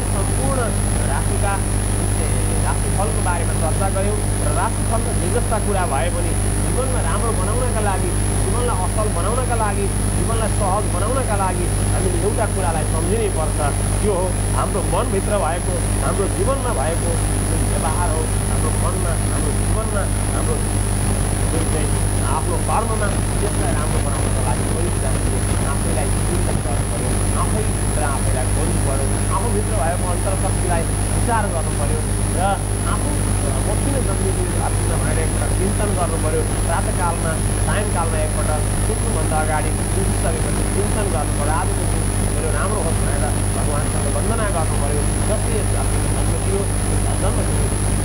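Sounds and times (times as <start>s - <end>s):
high-pitched whine: 0.0s - 48.0s
man speaking: 0.0s - 48.0s
steady low hum: 0.0s - 48.0s.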